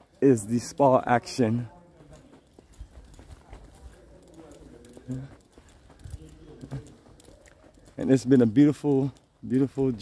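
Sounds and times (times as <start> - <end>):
faint background voices: 0.0 - 9.1
faint footsteps: 0.0 - 10.0.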